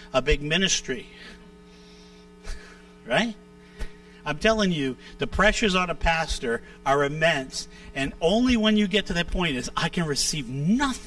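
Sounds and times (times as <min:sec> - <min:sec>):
low electrical mains hum: 0:00.0 - 0:11.0.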